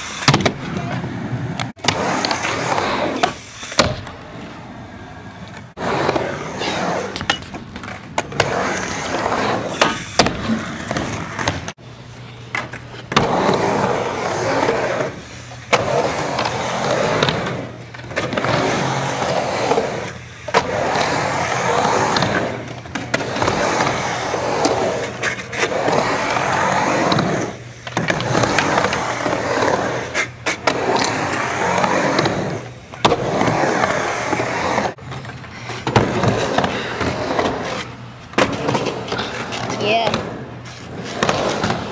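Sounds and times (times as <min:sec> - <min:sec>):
skateboard clacks: 0:00.0 - 0:04.4, 0:12.4 - 0:41.9
skateboard wheels rolling: 0:00.0 - 0:41.9.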